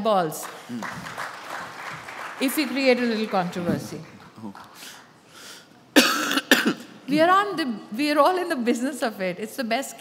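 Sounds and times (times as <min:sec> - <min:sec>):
person coughing: 0:06.0 - 0:06.9.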